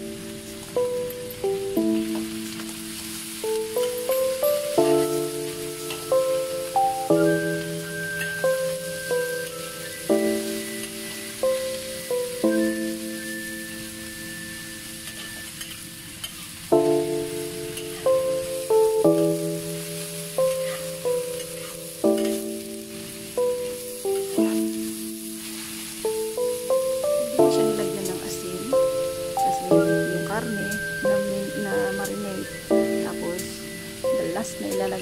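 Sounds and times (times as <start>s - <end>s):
food sizzling in a wok: 0.0s - 35.0s
music of held chords: 0.0s - 35.0s.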